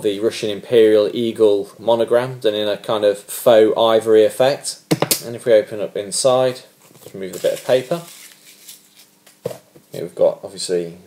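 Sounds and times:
person speaking: 0.0 - 8.3.

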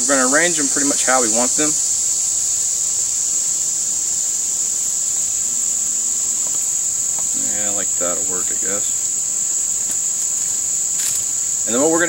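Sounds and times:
insects singing: 0.0 - 12.0.

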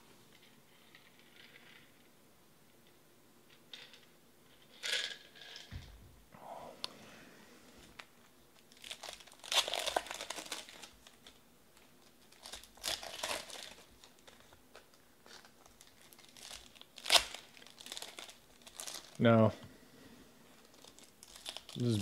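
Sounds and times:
foil wrappers crinkling and tearing: 8.6 - 11.4, 12.0 - 19.2, 20.6 - 22.0.

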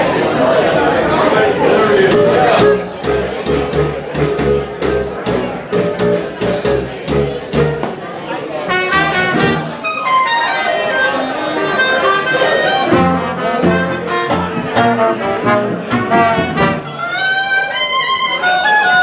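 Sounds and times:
guitar bass and drums beat: 2.1 - 8.0, 12.8 - 16.9
trumpet clarinet and trombone: 8.7 - 19.0.

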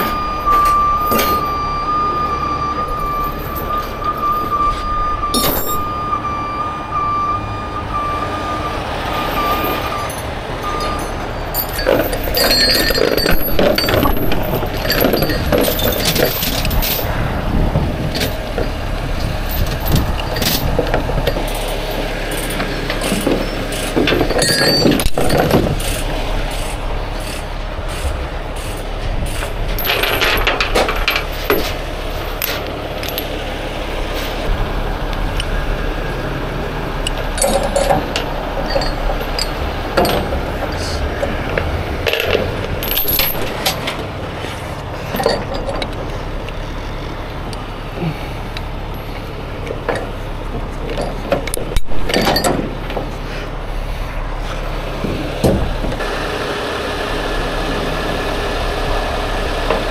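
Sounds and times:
steel chains clinking and rattling: 0.0 - 2.0, 2.8 - 6.0, 9.2 - 17.2, 18.0 - 33.4, 37.0 - 44.1, 45.0 - 46.4, 48.7 - 53.2
truck engine running: 0.0 - 59.9.

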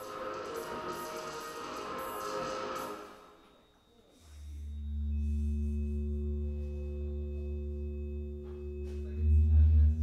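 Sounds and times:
electronic music through speakers: 0.0 - 3.4, 4.4 - 10.0.

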